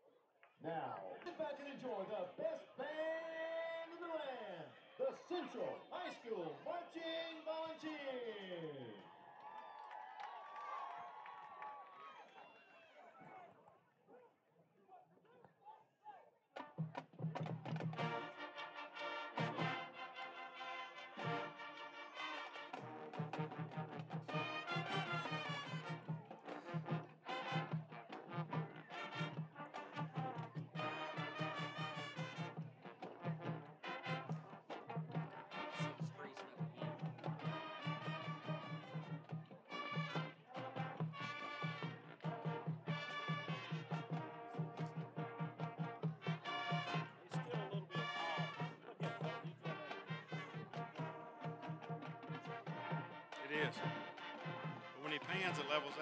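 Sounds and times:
marching band playing: 16.6s - 56.0s.

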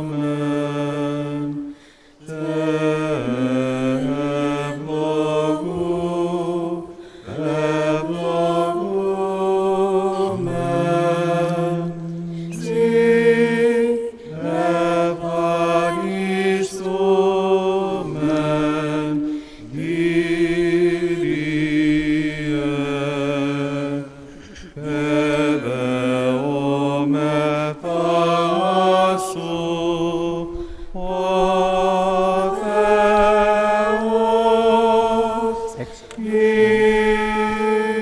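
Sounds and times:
men chanting slow church chant: 0.0s - 38.0s.

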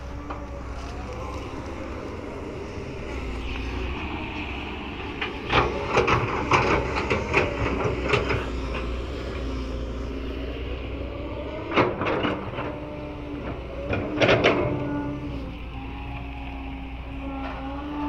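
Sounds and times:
excavator diesel engine running: 0.0s - 18.0s.

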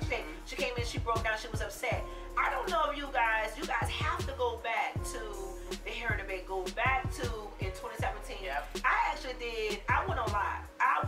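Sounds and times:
background music: 0.0s - 11.0s
woman talking into microphone: 0.0s - 11.0s.

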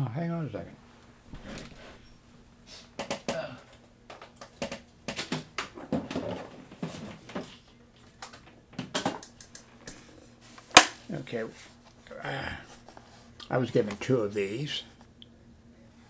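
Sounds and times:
battery unit knocking and rattling: 4.1s - 7.1s, 8.2s - 9.7s.

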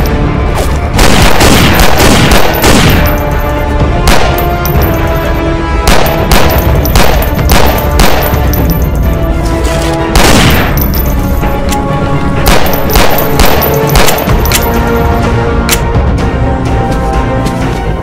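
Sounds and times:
background music with held notes: 0.0s - 18.0s
pistol shots: 0.9s - 3.3s, 4.1s - 4.8s, 5.8s - 8.7s, 10.1s - 10.9s, 12.4s - 14.8s
heavier ringing gunshot: 1.0s - 3.2s, 10.2s - 10.8s.

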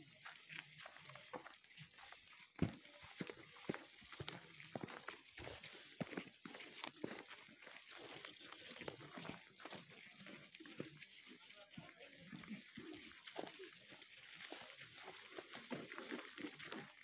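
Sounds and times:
footsteps crunching on snow: 0.0s - 11.0s.

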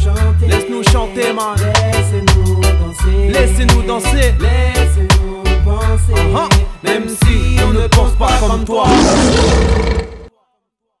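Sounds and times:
lion roaring: 8.8s - 10.3s.

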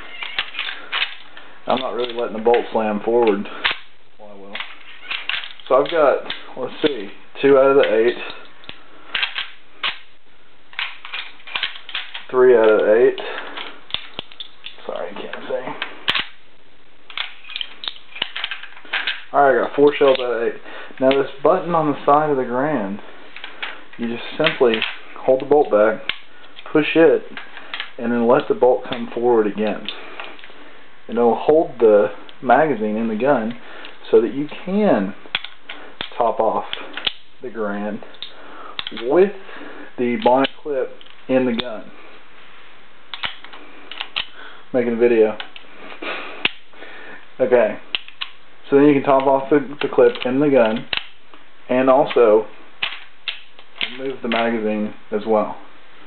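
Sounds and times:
steady background hiss: 0.0s - 56.0s
metallic clicks of cartridge loading: 38.1s - 39.1s, 43.1s - 44.4s.

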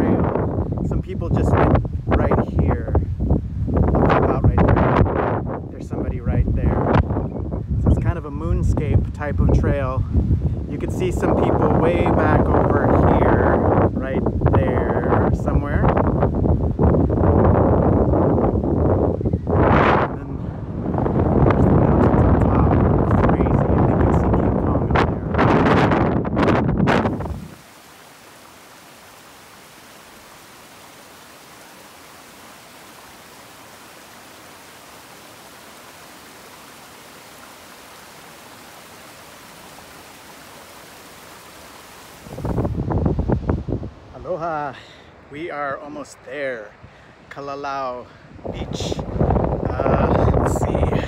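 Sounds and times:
wind buffeting microphone: 0.0s - 27.6s, 42.2s - 45.6s, 46.7s - 51.0s
stream cascading over rocks: 27.0s - 43.7s.

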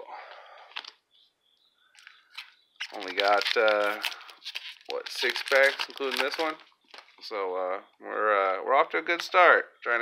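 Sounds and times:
cards handling clicks and rustle: 0.7s - 1.0s, 2.0s - 7.2s
man talking: 2.9s - 4.2s, 4.9s - 6.6s, 7.2s - 10.0s.

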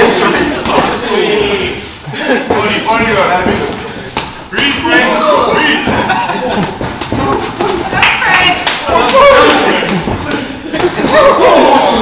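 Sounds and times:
people shouting and cheering: 4.5s - 12.0s.

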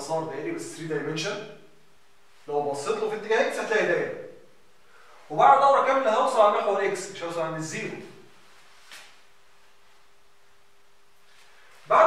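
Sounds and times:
man talking: 0.0s - 1.6s, 2.5s - 4.2s, 5.2s - 8.2s
faint steady hum: 0.0s - 12.0s.

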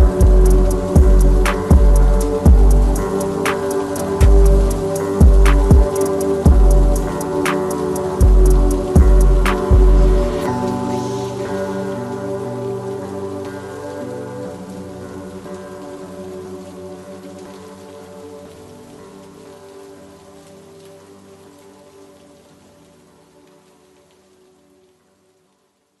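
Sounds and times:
held chord of backing music: 0.0s - 22.4s
rain falling: 0.0s - 26.0s.

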